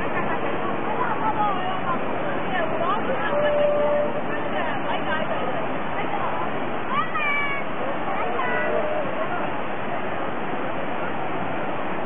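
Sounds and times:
surf breaking on a beach: 0.0s - 12.0s.

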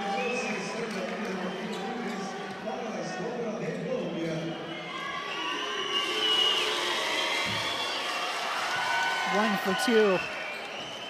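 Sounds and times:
arena crowd shouting: 8.3s - 10.2s.

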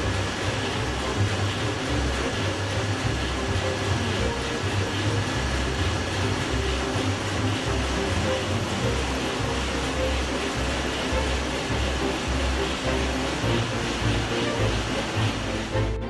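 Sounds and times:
diesel engine droning: 0.0s - 16.0s
music with pulsing bass: 0.0s - 16.0s.

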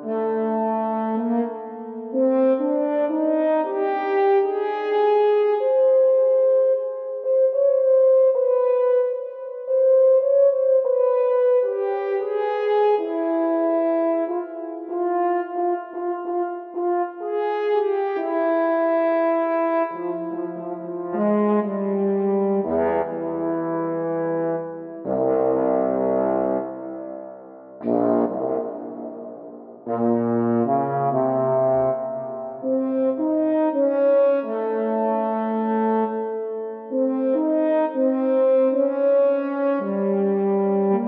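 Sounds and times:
french horns playing: 20.0s - 36.2s.

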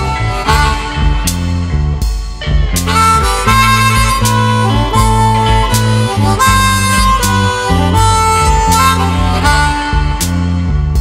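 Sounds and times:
slow blues band: 0.0s - 11.0s.

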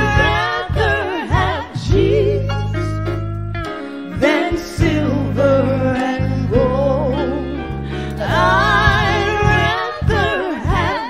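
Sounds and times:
women singing gospel song: 0.0s - 3.0s, 4.1s - 11.0s
steady bass notes: 0.0s - 11.0s.

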